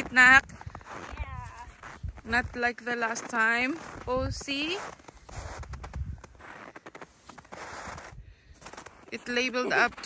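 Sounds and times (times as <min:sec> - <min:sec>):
footsteps crunching in snow: 0:00.0 - 0:10.0.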